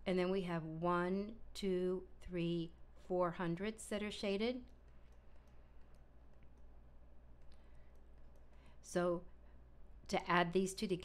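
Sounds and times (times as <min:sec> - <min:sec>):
low electrical hum: 0:00.0 - 0:11.0
stylus clicking on tablet: 0:04.6 - 0:08.8.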